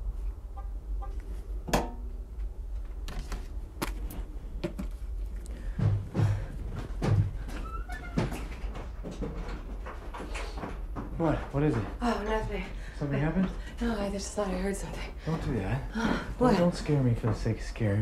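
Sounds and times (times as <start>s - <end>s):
steady low hum: 0.0s - 7.6s.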